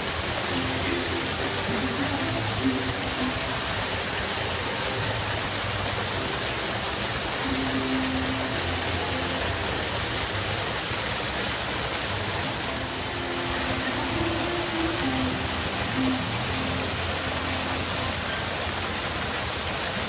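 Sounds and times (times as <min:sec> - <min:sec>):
waterfall rushing: 0:00.0 - 0:20.0.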